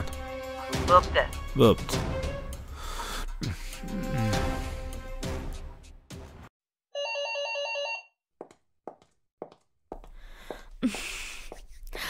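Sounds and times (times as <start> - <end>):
music: 0.0 - 6.5
electronic telephone ring: 7.0 - 8.2.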